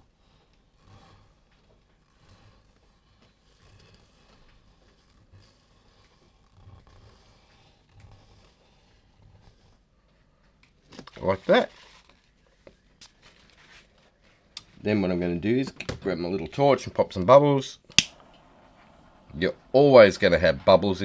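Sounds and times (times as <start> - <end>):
gloved hand rustling: 0.2 - 14.8.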